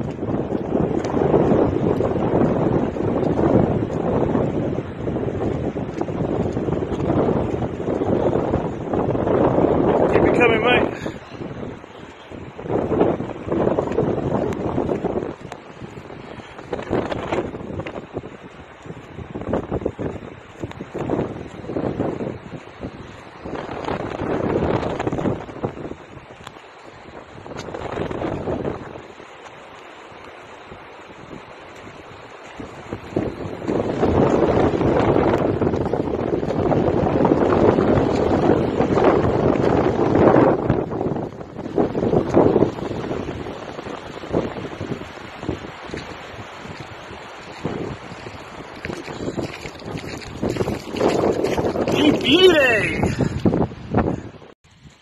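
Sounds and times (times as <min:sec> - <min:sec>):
small waves washing onto sand: 0:00.0 - 0:55.0
wind buffeting microphone: 0:00.0 - 0:55.0.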